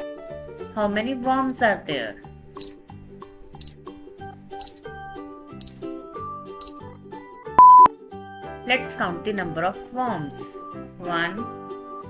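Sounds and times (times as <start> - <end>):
loud single-pitched beep: 7.6 - 7.9.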